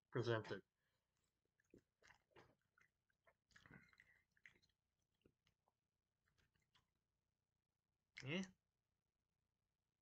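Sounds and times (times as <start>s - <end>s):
faint chewing: 1.1s - 7.0s.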